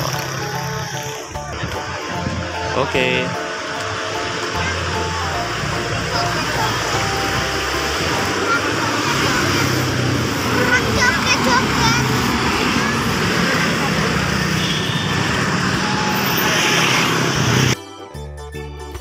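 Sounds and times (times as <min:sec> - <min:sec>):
road traffic going by: 0:00.0 - 0:17.8
truck engine running: 0:00.0 - 0:17.8
keyboard music: 0:00.0 - 0:19.0.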